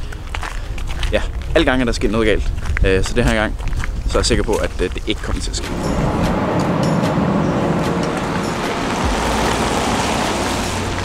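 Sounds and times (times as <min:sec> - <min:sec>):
passing vehicle running noise: 0:05.2 - 0:11.0.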